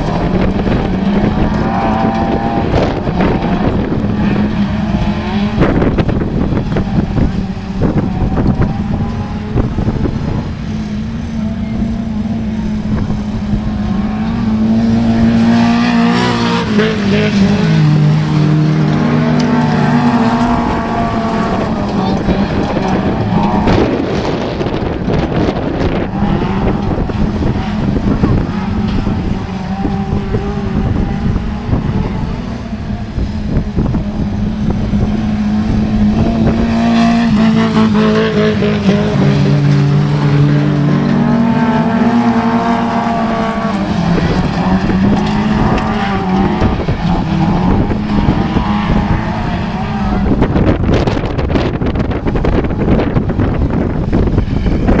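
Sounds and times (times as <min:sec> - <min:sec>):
racing car engines: 0:00.0 - 0:55.0.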